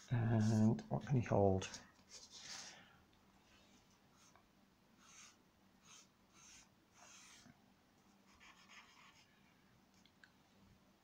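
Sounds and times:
charcoal scratching on paper: 0:05.0 - 0:07.5, 0:08.3 - 0:09.3.

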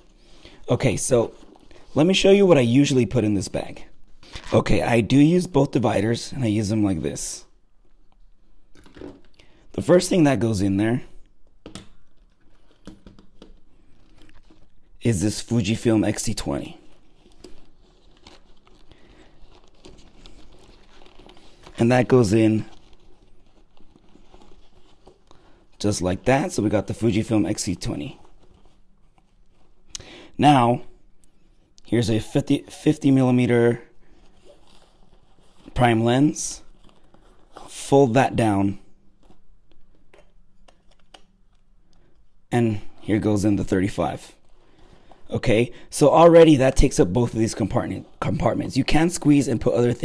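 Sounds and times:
bag fabric rustling: 0:11.9 - 0:29.9, 0:33.4 - 0:37.9.

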